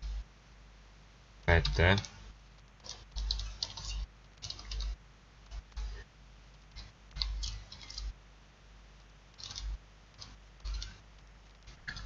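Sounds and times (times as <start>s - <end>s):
computer keyboard typing: 1.6s - 5.6s, 6.7s - 8.1s, 9.4s - 12.0s.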